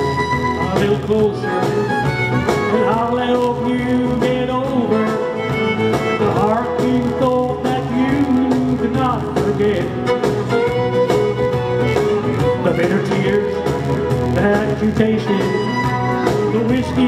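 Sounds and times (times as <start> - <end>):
country band playing live: 0.0 - 17.0
person singing: 0.0 - 17.0
sliding lead guitar line: 0.0 - 17.0.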